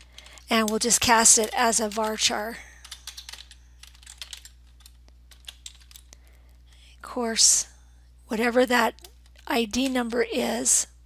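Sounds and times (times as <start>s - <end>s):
keyboard typing: 0.0s - 6.1s
low steady hum: 0.0s - 11.0s.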